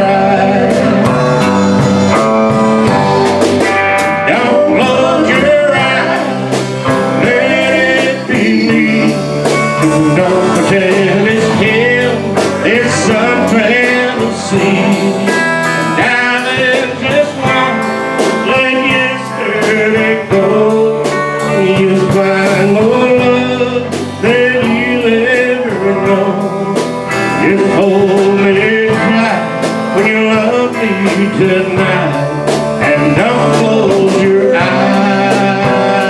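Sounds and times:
country band playing slow song: 0.0s - 36.0s.

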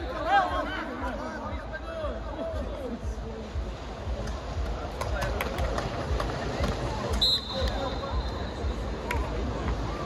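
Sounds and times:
referee's whistle: 7.2s - 8.6s.

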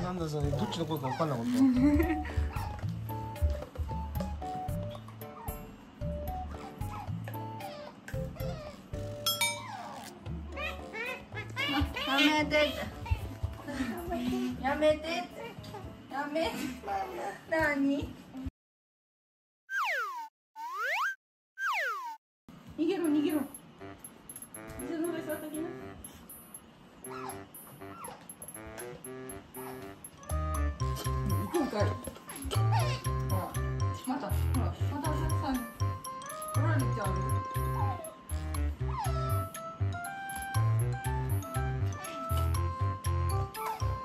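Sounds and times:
otter squeaking: 0.0s - 3.4s, 6.3s - 13.4s, 23.7s - 44.0s
light background music: 0.0s - 18.2s, 22.8s - 44.0s.

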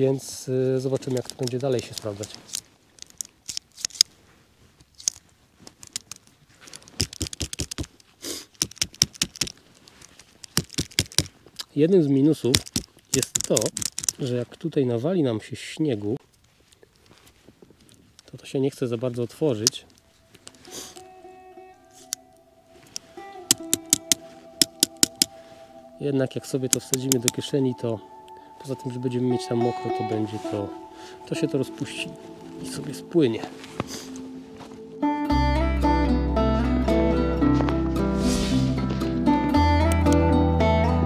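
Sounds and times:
brief rustle: 0.8s - 11.7s
multitool clicking open and shut: 1.3s - 4.1s, 12.6s - 14.2s, 22.9s - 25.3s
sharp clicks: 5.0s - 9.6s, 10.4s - 11.3s, 12.5s - 14.2s, 22.9s - 25.4s, 26.6s - 27.4s
acoustic guitar music: 19.5s - 41.0s.

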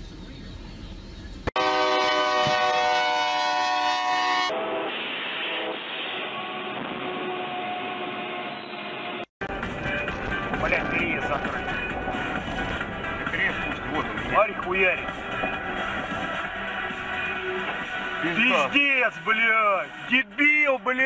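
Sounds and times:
train noise: 0.0s - 21.0s
train horn: 1.6s - 9.3s.

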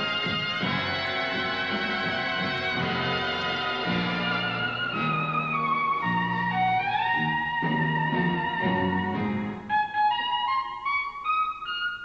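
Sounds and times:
jazz clarinet playing: 0.0s - 12.0s.

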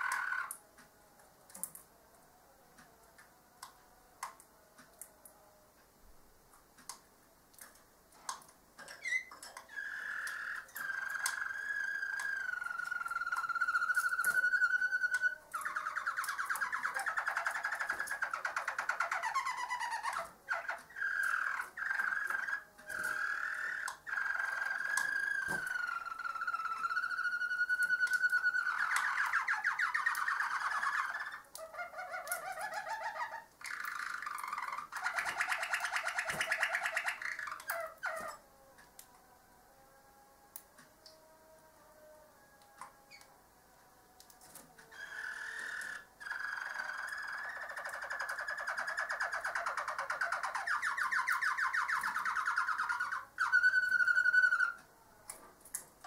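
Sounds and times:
canary singing trills: 0.0s - 0.6s, 8.8s - 38.4s, 44.9s - 54.8s.

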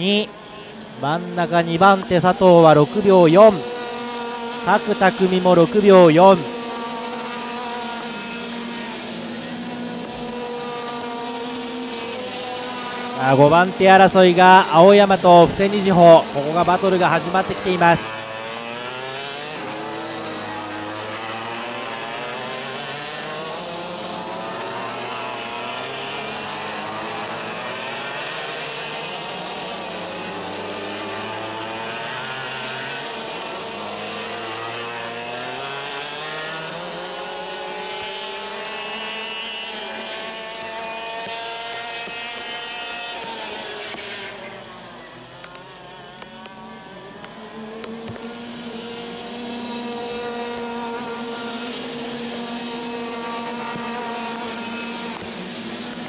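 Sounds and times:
kart engines revving past: 0.0s - 56.0s.

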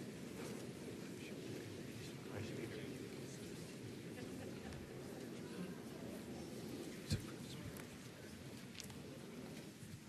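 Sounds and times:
murmur of many voices: 0.0s - 10.0s.

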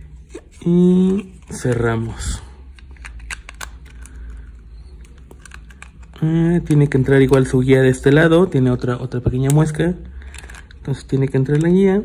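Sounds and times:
plastic clicks and rubbing: 1.1s - 7.7s.

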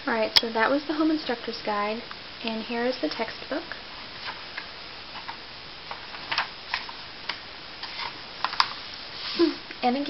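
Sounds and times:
book pages turning: 4.2s - 9.4s.

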